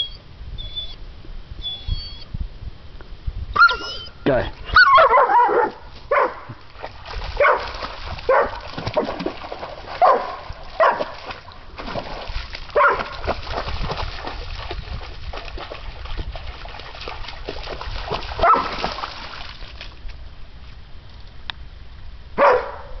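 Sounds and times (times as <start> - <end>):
dog barking: 4.8 - 6.5, 7.4 - 7.7, 8.3 - 8.6, 10.0 - 11.1, 12.8 - 13.1, 18.4 - 18.7, 22.4 - 23.0
water splashing in a creek: 5.7 - 21.4.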